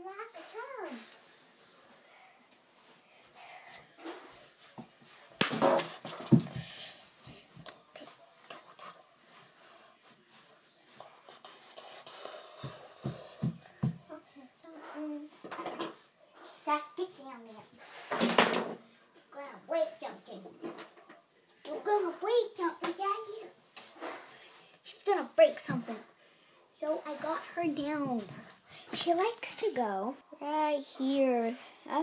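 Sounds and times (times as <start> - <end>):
breathing: 0.9 - 4.6, 17.8 - 18.2, 24.0 - 24.8, 26.0 - 26.7, 28.3 - 29.0, 31.5 - 31.9.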